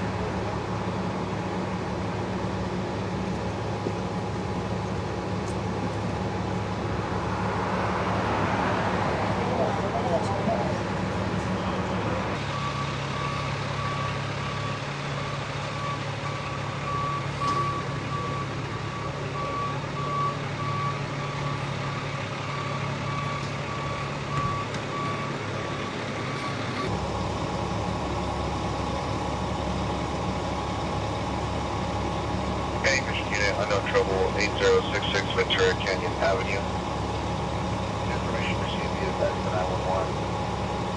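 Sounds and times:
engine hum: 0:00.0 - 0:40.9
truck reversing alarm beeping: 0:09.4 - 0:40.9.

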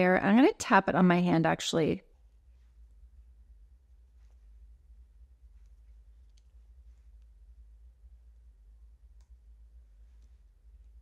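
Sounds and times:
low room hum: 0:00.0 - 0:11.0
faint soft clicks: 0:05.5 - 0:07.4, 0:09.0 - 0:11.0.

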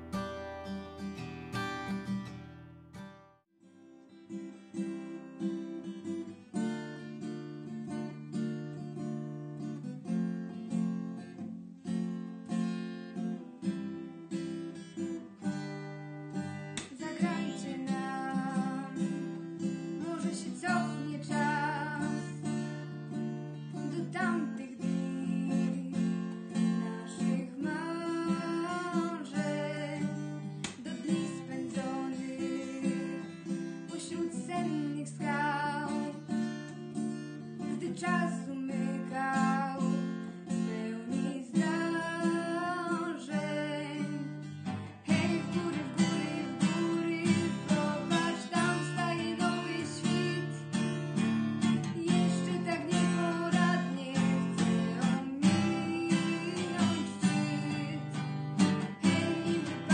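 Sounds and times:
acoustic guitar strummed chords: 0:00.0 - 0:59.9
music: 0:00.0 - 0:59.9
young woman singing: 0:16.4 - 0:36.8, 0:37.4 - 0:59.9.

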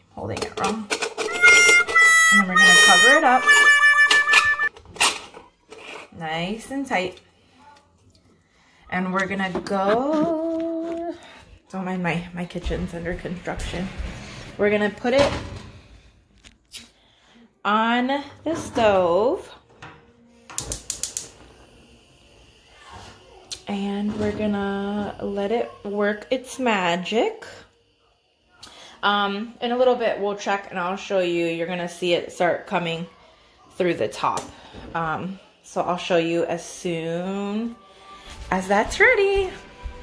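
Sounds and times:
metal threads squealing: 0:01.2 - 0:04.7
gas stove igniter clicking: 0:20.6 - 0:21.4.

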